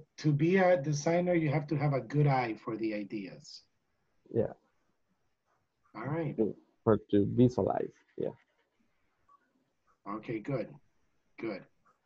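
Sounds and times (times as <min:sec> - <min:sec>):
man saying yeah: 0:06.1 - 0:07.8.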